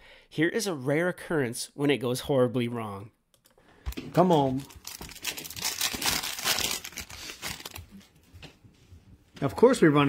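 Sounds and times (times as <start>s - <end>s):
foil wrapper crinkling: 4.2s - 8.0s.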